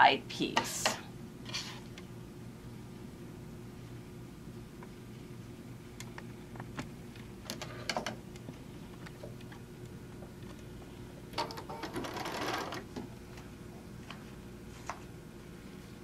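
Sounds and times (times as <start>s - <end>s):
sewing machine stitching: 11.6s - 12.9s.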